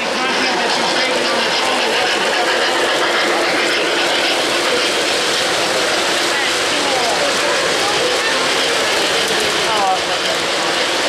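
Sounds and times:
model train rolling on track: 0.0 - 11.0
people talking: 0.0 - 11.0.

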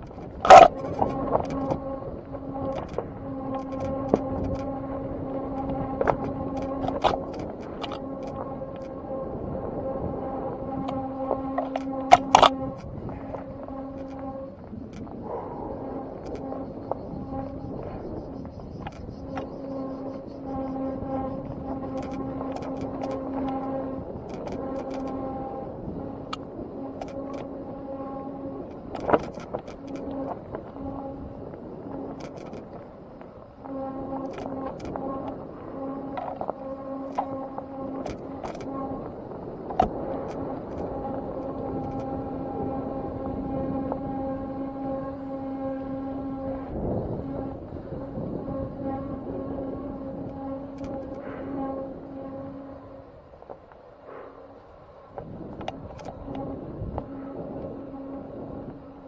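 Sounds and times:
small motor whining: 0.0 - 53.7, 55.2 - 59.0.

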